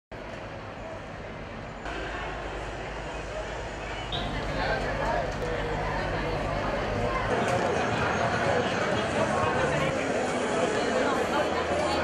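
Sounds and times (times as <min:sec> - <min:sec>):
outdoor background noise: 0:00.1 - 0:12.0.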